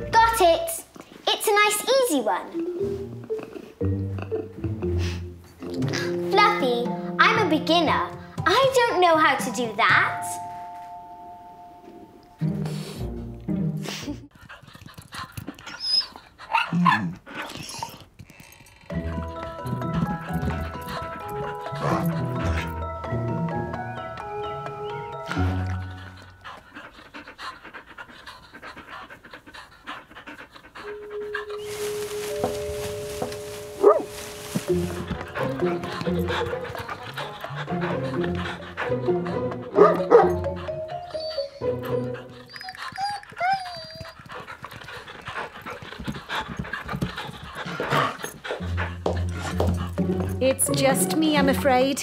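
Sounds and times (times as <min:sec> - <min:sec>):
light background music: 0:00.0 - 0:14.3, 0:18.9 - 0:52.0
cartoon creature panting: 0:13.9 - 0:22.9, 0:25.3 - 0:31.6, 0:34.7 - 0:50.1.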